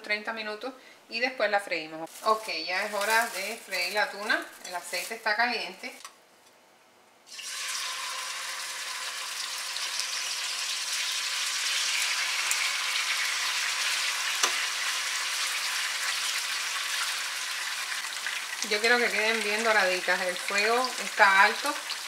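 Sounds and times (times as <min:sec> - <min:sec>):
fish sizzling in hot oil: 0:07.3 - 0:22.0.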